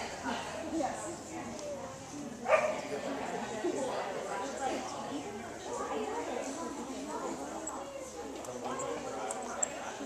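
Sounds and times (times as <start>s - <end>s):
faint background voices: 0.0s - 10.0s
dog barking: 2.5s - 2.8s.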